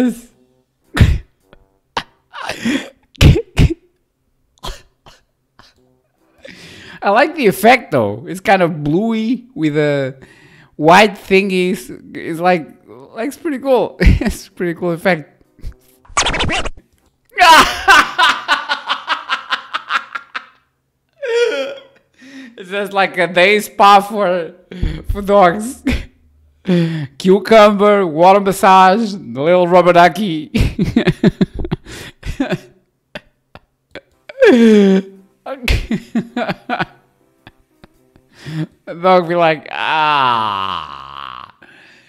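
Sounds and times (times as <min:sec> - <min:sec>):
man laughing in breathy bursts: 0:00.9 - 0:03.9, 0:04.6 - 0:07.0, 0:17.4 - 0:20.6, 0:21.2 - 0:22.6, 0:30.6 - 0:35.1, 0:35.7 - 0:38.8, 0:40.2 - 0:42.0.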